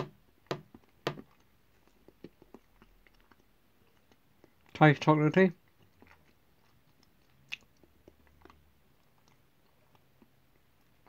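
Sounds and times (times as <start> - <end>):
chewing clicks: 1.3 - 4.7, 5.7 - 11.0.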